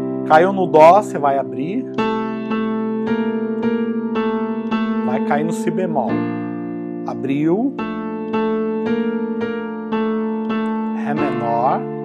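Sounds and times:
electric keyboard piano chord: 0.0s - 12.0s.

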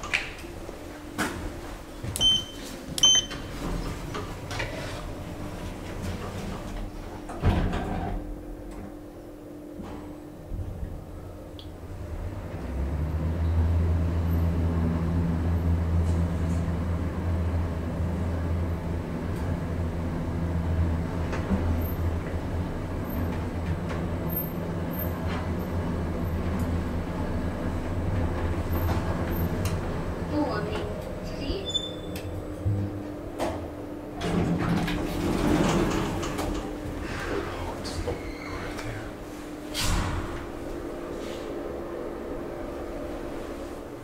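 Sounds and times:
elevator doors sliding open: 0.0s - 9.0s, 11.7s - 44.0s
elevator low hum: 0.0s - 44.0s.

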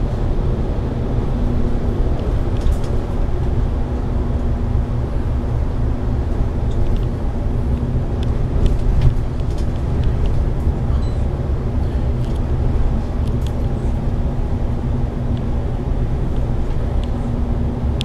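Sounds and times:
bus engine and road drone: 0.0s - 18.0s
light rattles and clicks: 1.6s - 3.6s, 6.2s - 11.2s, 11.9s - 14.2s, 16.2s - 18.0s.

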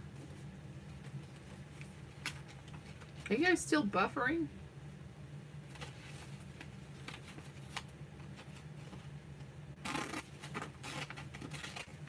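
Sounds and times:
paper brochure rustling: 5.7s - 9.1s.

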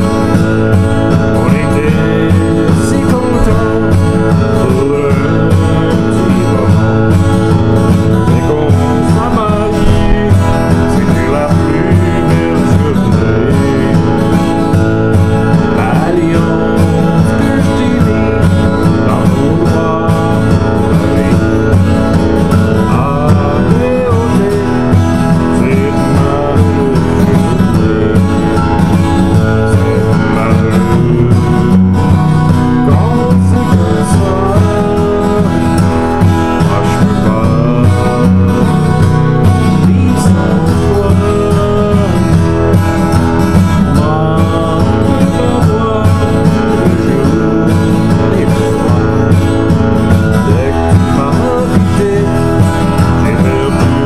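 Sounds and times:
acoustic guitar strumming: 0.0s - 54.0s
man singing: 0.0s - 54.0s.

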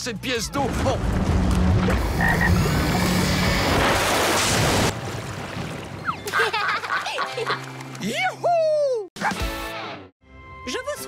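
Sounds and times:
water gushing into pond: 1.8s - 6.7s.

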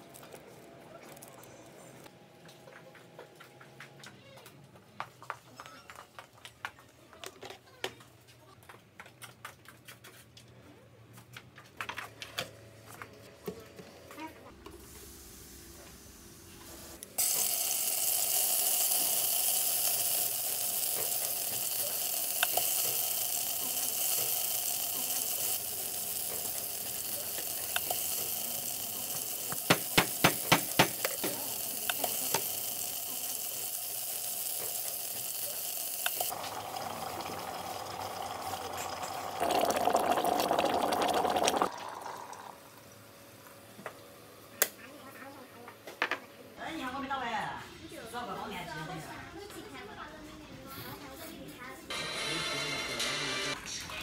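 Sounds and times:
hot oil sizzling: 17.2s - 42.7s
liquid pouring into kettle: 17.2s - 42.8s.

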